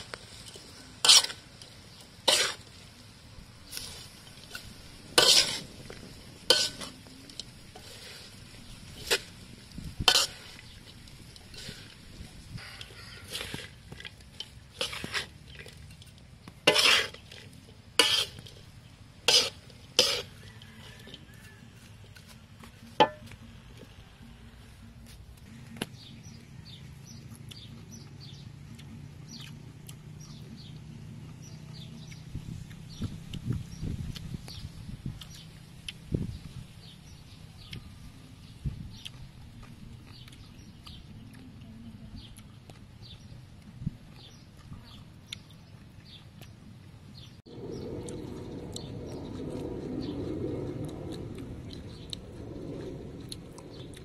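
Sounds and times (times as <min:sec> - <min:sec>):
spatula scraping metal wok: 0:00.0 - 0:02.8, 0:03.7 - 0:22.2.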